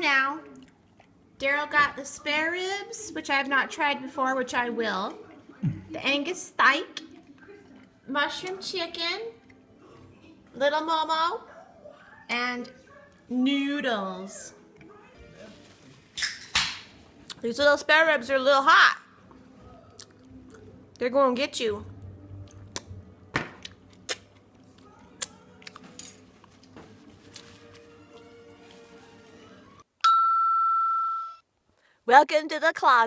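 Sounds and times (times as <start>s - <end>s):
chime-like bell ding: 30.0s - 31.4s.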